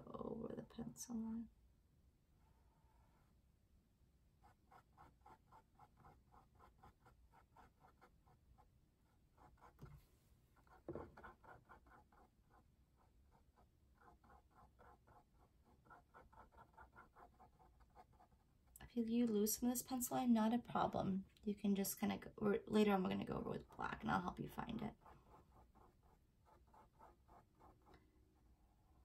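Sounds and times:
paintbrush stroking canvas: 4.4 - 18.7, 23.0 - 29.0
knock: 10.9 - 11.2.

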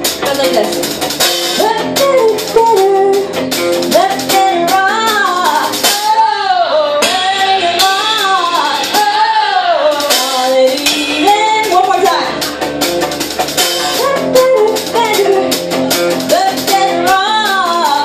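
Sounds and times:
woman singing with vibrato: 1.6 - 12.4, 13.9 - 18.0.

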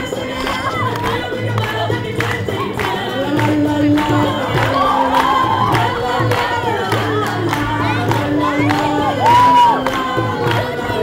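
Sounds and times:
crowd shouting and cheering: 0.0 - 1.7, 4.0 - 11.0
hand drum beat: 0.0 - 11.0
loud held whoop: 9.2 - 9.8.

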